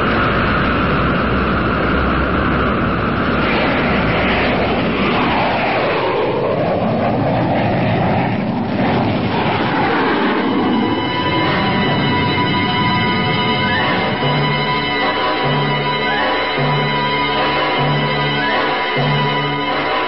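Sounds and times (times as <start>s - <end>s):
jet engines running up: 0.0s - 20.0s.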